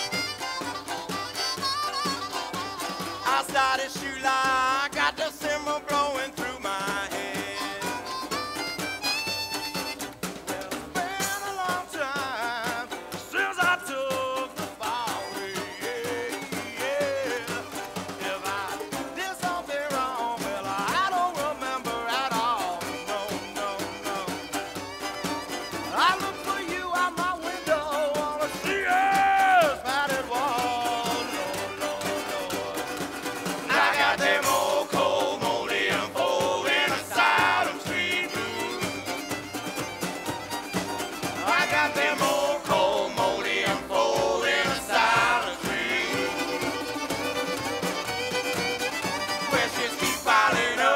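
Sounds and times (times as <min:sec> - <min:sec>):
fiddle melody: 0:00.0 - 0:50.9
guitar accompaniment: 0:00.0 - 0:50.9
upright bass: 0:00.0 - 0:50.9.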